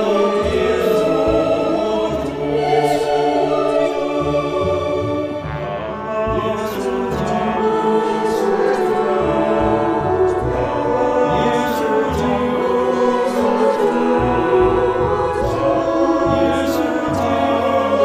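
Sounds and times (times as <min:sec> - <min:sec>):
choir singing a hymn: 0:00.0 - 0:18.0
orchestral accompaniment: 0:00.0 - 0:18.0.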